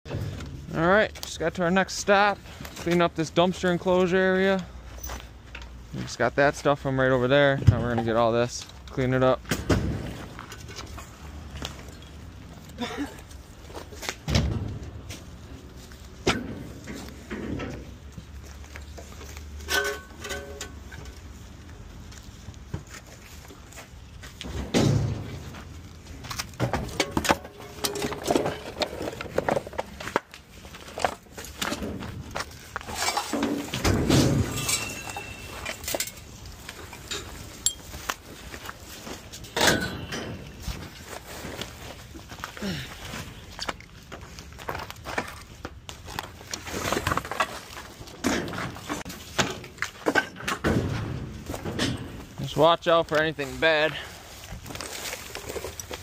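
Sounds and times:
debris knocks and clinks: 18.8 - 21.3, 24.4 - 41.7
footsteps on littered ground: 21.1 - 39.5, 40.4 - 50.0, 51.3 - 56.0
rustling: 51.2 - 56.0.

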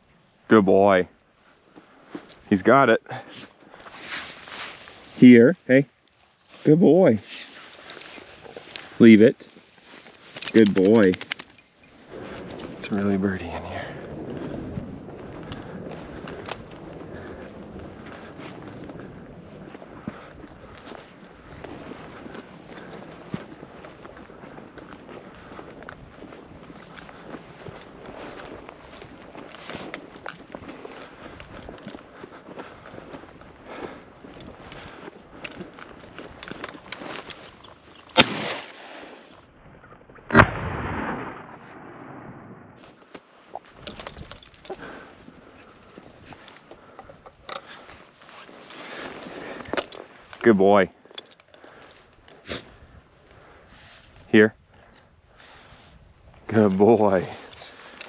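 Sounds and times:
footsteps through dry grass: 1.1 - 2.6, 3.2 - 39.8, 42.8 - 58.0
sharp crack: 38.1 - 39.3, 40.2 - 42.8
shotgun shot: 38.2 - 39.1, 40.3 - 42.7.

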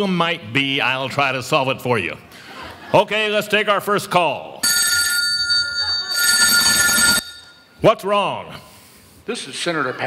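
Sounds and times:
telephone bell ringing: 4.6 - 7.8.

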